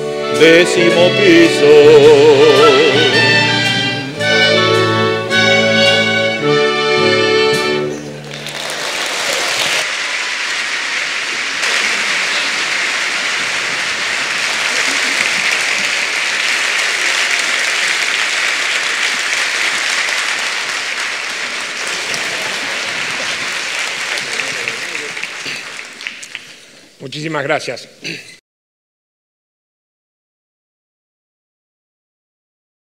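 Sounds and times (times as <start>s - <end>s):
orchestra chord: 0.0s - 8.3s
audience applause: 2.5s - 27.0s.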